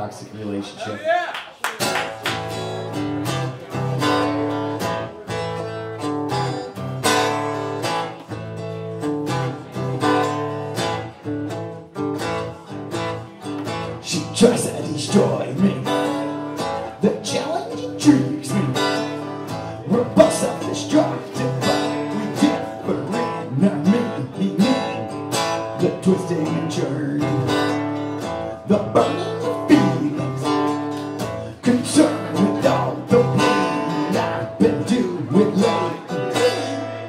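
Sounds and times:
acoustic guitar strumming: 0:01.8 - 0:37.0.

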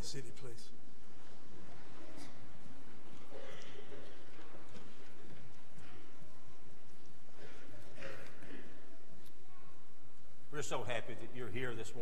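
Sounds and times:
room background noise: 0:00.0 - 0:12.0.

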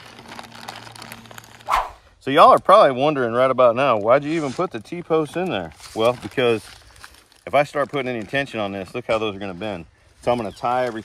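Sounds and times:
plastic bag rustling: 0:00.0 - 0:02.1, 0:03.3 - 0:11.0
brief sharp sound: 0:01.7 - 0:02.0.

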